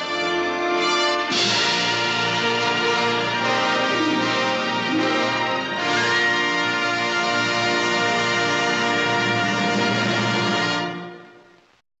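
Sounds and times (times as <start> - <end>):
orchestral brass chord: 0.0 - 11.6.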